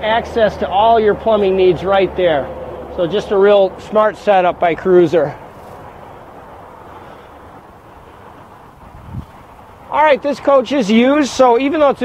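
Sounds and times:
wind on microphone: 0:05.5 - 0:09.9.

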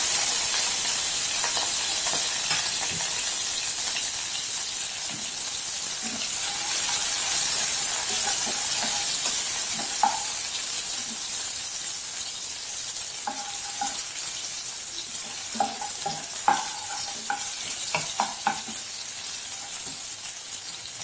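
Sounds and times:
onions sizzling in hot oil: 0:00.0 - 0:21.0
spatula tapping pan: 0:00.5 - 0:03.3, 0:06.0 - 0:11.3, 0:13.2 - 0:14.2, 0:15.0 - 0:20.1.

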